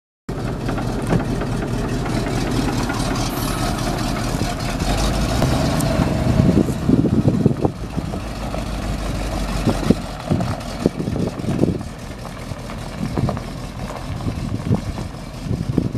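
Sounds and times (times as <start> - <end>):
engine idling low rumble: 0.3 - 15.9.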